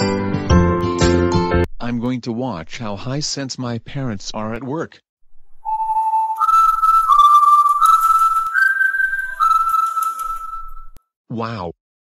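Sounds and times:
person whistling a tune: 5.6 - 11.0.

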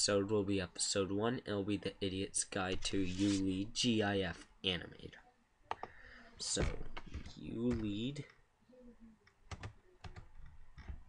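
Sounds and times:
quiet keyboard keystrokes: 6.6 - 8.4, 9.2 - 11.0.

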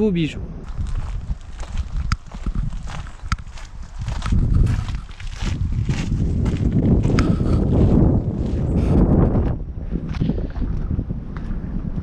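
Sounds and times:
wind rumbling on microphone: 0.0 - 12.0
footsteps: 0.6 - 11.6.

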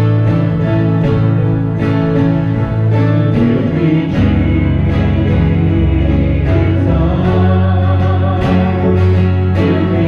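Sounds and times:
acoustic guitar: 0.0 - 10.0
steady bass line: 0.0 - 10.0.

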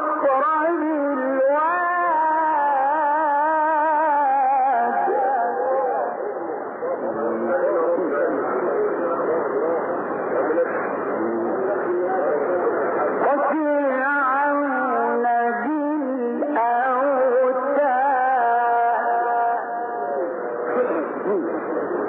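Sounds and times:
person reciting with vibrato: 0.0 - 7.5, 13.2 - 21.4.

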